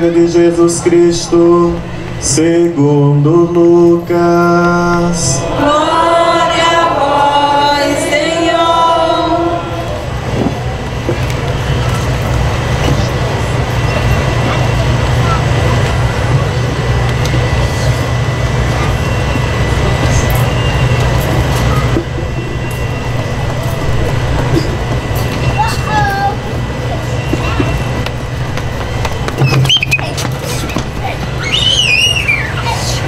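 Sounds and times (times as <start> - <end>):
murmur of congregation: 0.0 - 28.7.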